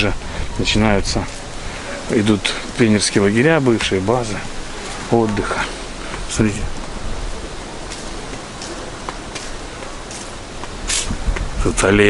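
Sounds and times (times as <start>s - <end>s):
hissing outdoor background noise: 0.0s - 12.0s.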